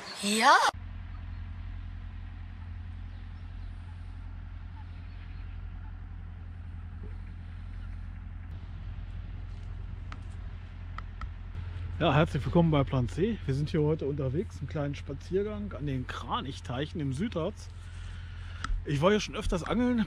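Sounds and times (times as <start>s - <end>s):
tractor engine droning: 0.0s - 20.0s.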